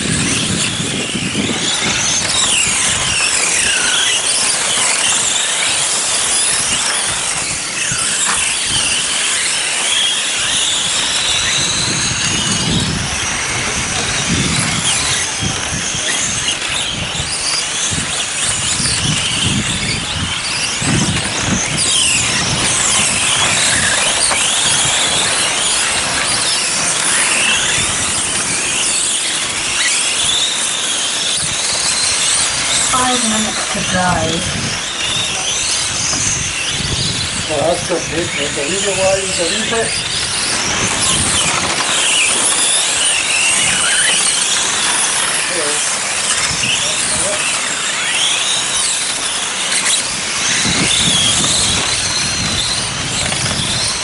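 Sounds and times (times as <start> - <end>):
electric motors whining: 0.0 - 53.9.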